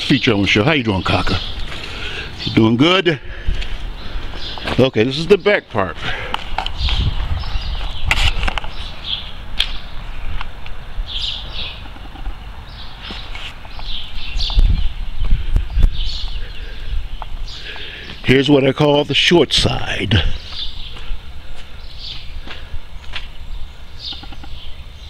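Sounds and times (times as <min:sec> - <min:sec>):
wind rumble on microphone: 0:06.4 - 0:17.6
bird chirps: 0:06.7 - 0:10.2, 0:11.0 - 0:19.1, 0:20.2 - 0:25.0.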